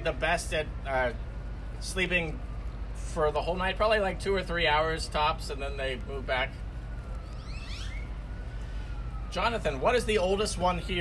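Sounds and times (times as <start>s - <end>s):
distant siren: 0.0s - 11.0s.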